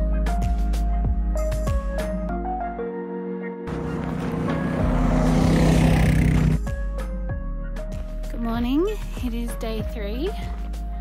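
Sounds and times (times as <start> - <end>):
background music: 0.0 - 11.0
vehicle engine and tyres on gravel: 3.7 - 6.7.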